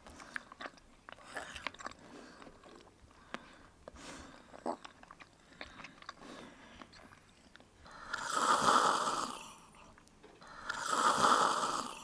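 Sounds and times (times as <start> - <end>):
person snoring: 7.9 - 9.8, 10.4 - 12.0.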